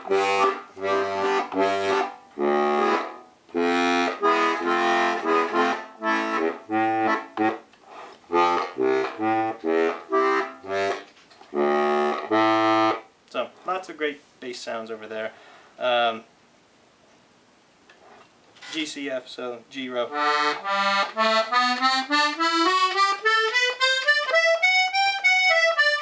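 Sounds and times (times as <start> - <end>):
accordion short detached chords: 0.0 - 13.0, 20.1 - 26.0
deep accordion bass notes: 0.0 - 13.1, 20.0 - 26.0.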